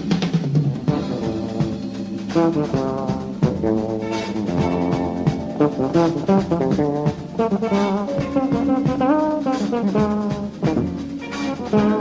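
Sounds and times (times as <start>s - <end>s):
drum kit hits: 0.0s - 12.0s
keyboards: 0.0s - 12.0s
electric guitar: 0.8s - 12.0s.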